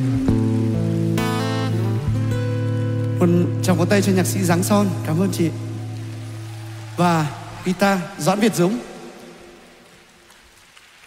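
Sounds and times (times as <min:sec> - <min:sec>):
audience applause: 0:05.2 - 0:11.0.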